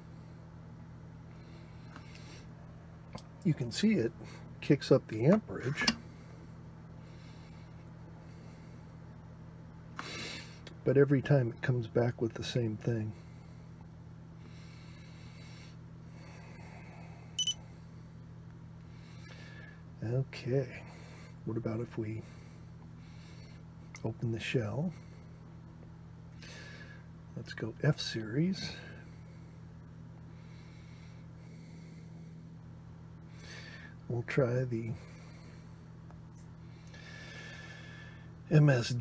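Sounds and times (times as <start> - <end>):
low electrical hum: 0.0 - 39.0
faint breath: 13.1 - 18.2, 18.8 - 19.9, 22.2 - 23.8, 26.4 - 27.1, 28.6 - 32.6, 33.2 - 34.0, 34.9 - 36.0, 36.6 - 38.4.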